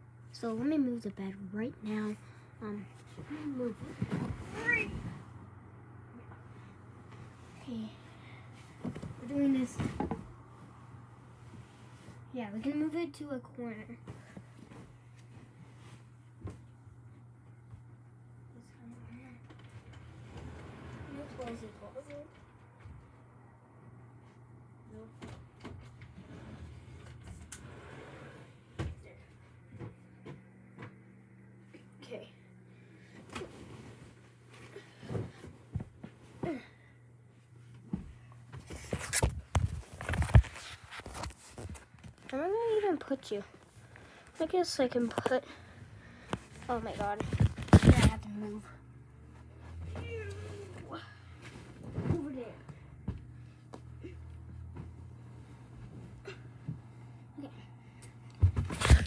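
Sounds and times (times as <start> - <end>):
steady low hum: 0.0 - 59.0
furniture knocks and bumps: 58.4 - 59.0.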